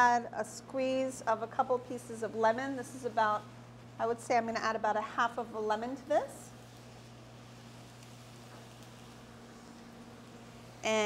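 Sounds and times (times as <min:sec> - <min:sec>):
steady low hum with hiss: 0:00.0 - 0:11.0.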